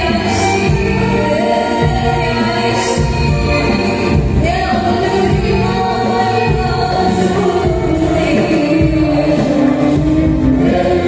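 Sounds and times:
group of singers: 0.0s - 11.0s
low drum accompaniment: 0.0s - 11.0s
woman singing into microphone: 0.0s - 11.0s.

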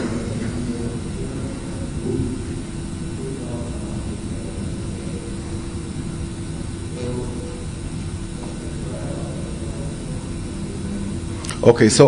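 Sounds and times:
faint hum: 0.0s - 12.0s
low room rumble: 0.0s - 12.0s.

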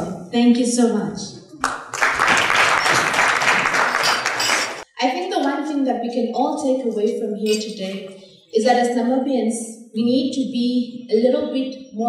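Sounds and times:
audience applauding: 1.6s - 4.8s.

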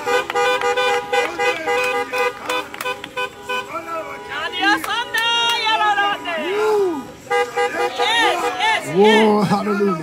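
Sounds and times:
car horns beeping: 0.0s - 10.0s
voices calling out: 0.0s - 10.0s.

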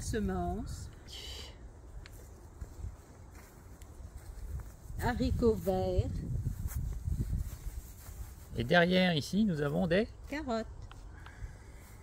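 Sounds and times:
soft footsteps: 1.8s - 8.8s
light rustle: 1.9s - 12.0s.

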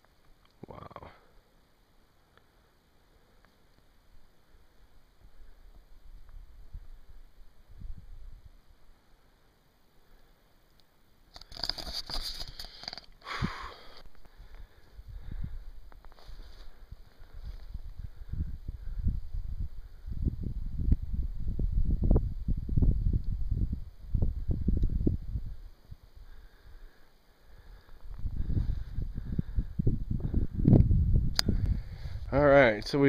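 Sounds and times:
wind buffeting microphone: 14.5s - 15.8s, 16.5s - 26.4s, 28.0s - 32.5s.

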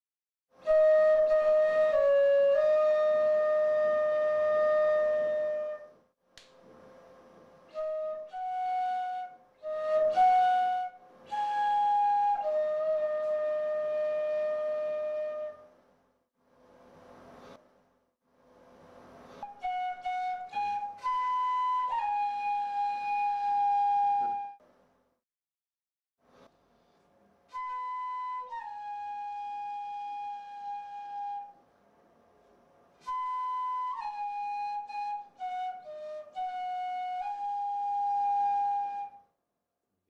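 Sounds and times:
flute melody: 0.6s - 6.0s, 7.7s - 15.7s, 19.4s - 24.6s, 27.5s - 31.6s, 33.0s - 39.2s.

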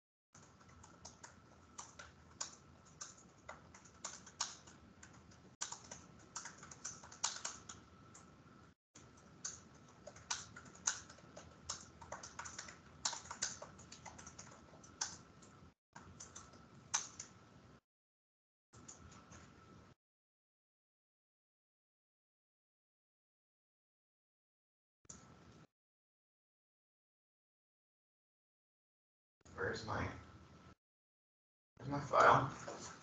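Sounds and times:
computer keyboard typing: 0.4s - 8.3s, 9.0s - 17.4s.

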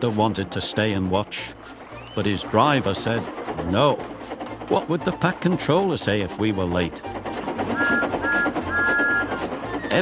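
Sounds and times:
background music: 0.0s - 10.0s
steam engine whistle tooting: 7.7s - 10.0s.

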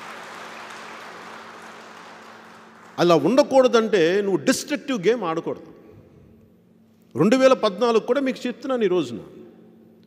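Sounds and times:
audience applauding: 0.0s - 3.2s.

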